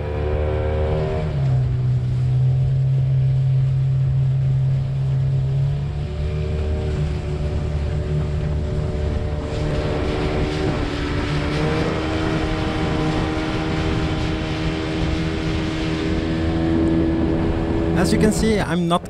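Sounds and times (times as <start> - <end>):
outboard engine running: 0.0 - 19.0.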